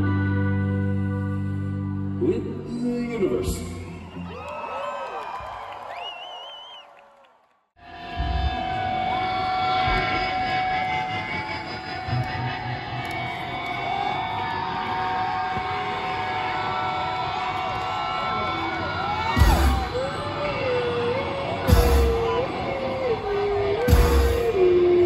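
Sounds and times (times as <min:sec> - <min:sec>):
crowd cheering and shouting: 0:03.4 - 0:25.0.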